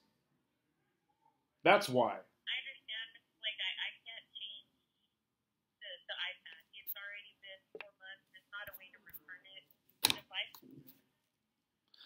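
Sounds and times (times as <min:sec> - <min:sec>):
woman speaking over phone: 0:02.5 - 0:04.7, 0:05.8 - 0:10.6.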